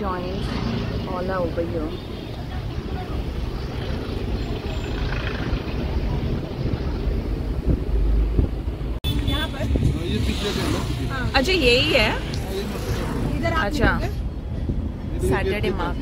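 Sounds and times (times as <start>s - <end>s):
road traffic rumble: 0.0s - 16.0s
wind on microphone: 2.6s - 11.4s.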